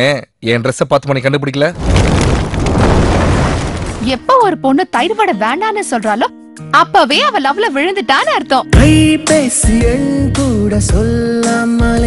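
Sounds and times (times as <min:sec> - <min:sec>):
loud explosion-like noise: 0:01.8 - 0:04.3.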